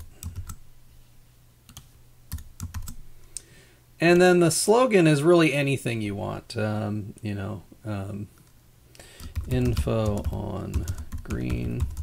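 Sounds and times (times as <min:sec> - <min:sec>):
computer keyboard keystrokes: 0:00.0 - 0:00.6, 0:01.7 - 0:03.0, 0:09.2 - 0:12.0.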